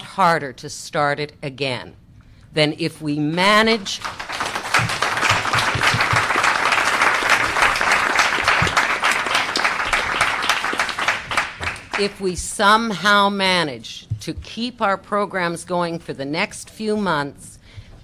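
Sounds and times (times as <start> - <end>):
audience applause: 4.0 - 12.1.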